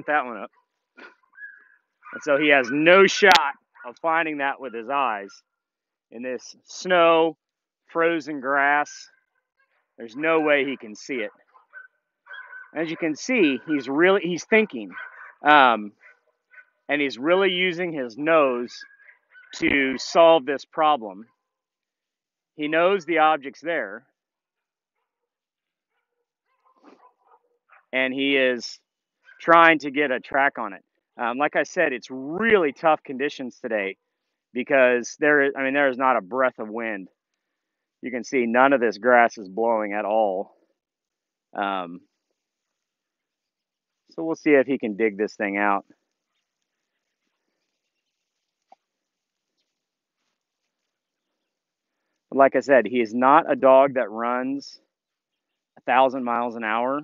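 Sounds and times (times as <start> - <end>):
faint dog sounds: 0.3 - 5.5, 8.9 - 16.9.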